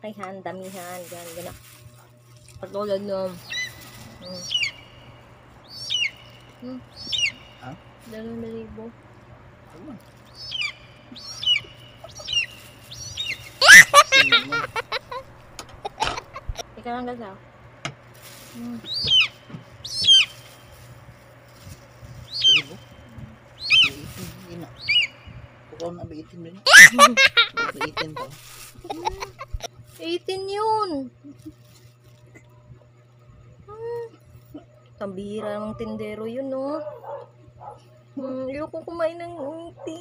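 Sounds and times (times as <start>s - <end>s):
steady low hum: 0.0s - 40.0s
bird calling: 3.2s - 8.7s, 9.8s - 16.6s, 18.5s - 20.9s, 21.5s - 25.6s, 26.7s - 29.7s.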